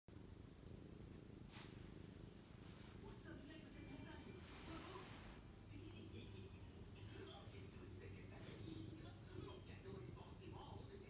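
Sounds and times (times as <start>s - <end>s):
cat purring: 0.1s - 11.0s
soft rustle: 1.0s - 5.6s.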